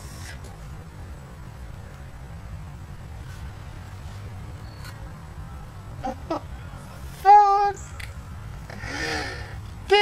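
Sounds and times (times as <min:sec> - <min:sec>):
person laughing breathily: 0:08.7 - 0:09.6.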